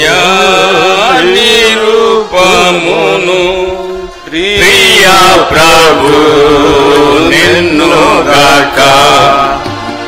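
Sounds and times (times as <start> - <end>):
men singing a hymn: 0.0 - 10.0.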